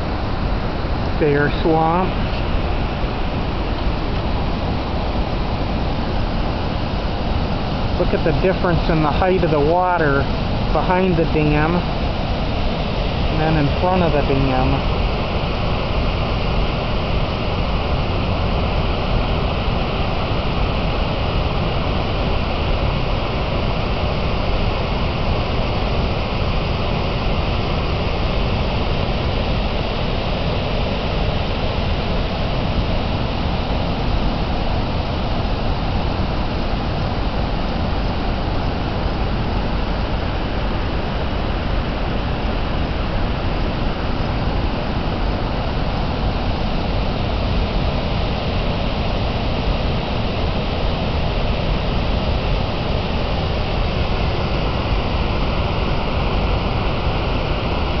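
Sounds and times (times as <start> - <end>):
rushing floodwater: 0.0 - 58.0.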